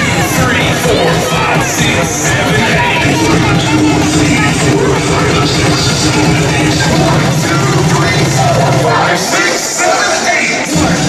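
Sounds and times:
children shouting: 0.0s - 5.4s, 7.9s - 11.0s
crowd cheering: 0.0s - 11.0s
loud dance music: 0.0s - 11.0s.

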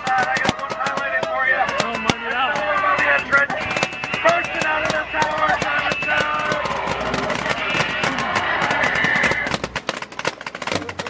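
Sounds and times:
paintball guns firing: 0.0s - 11.0s.

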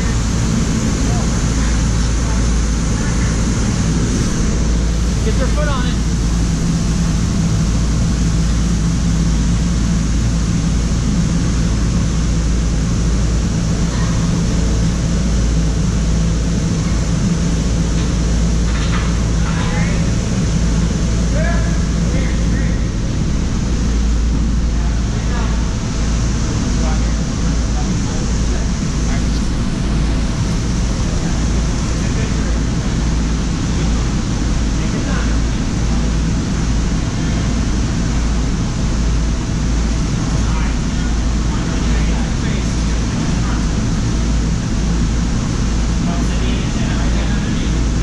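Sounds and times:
loud low rumble and hiss: 0.0s - 48.0s.

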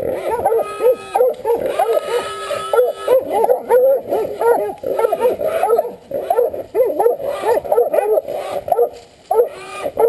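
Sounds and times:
dogs barking rapidly: 0.0s - 10.0s.

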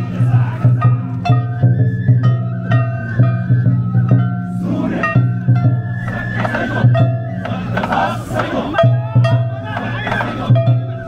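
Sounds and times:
bamboo flutes melody: 0.0s - 11.0s
taiko drum strikes: 0.0s - 11.0s.

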